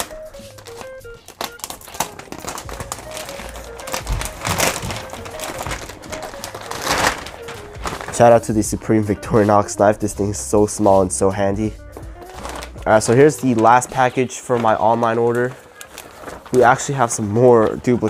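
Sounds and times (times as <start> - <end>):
plastic mailer bag crinkling: 0.0 - 8.7, 12.1 - 18.0
background music: 0.0 - 18.0.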